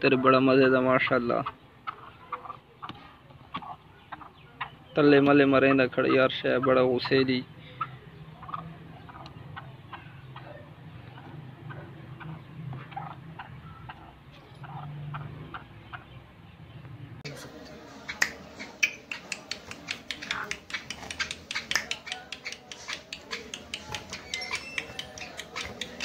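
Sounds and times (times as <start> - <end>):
rapid sharp clicks: 18.2 - 26.0.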